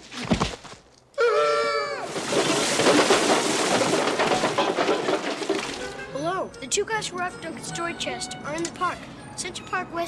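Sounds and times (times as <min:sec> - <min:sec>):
boy speaking: 0:06.1 - 0:10.0.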